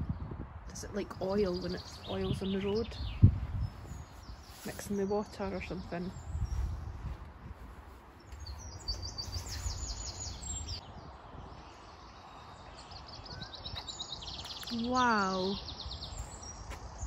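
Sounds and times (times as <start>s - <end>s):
low rumble of wind: 0.0s - 17.0s
songbird chirping: 0.0s - 17.0s.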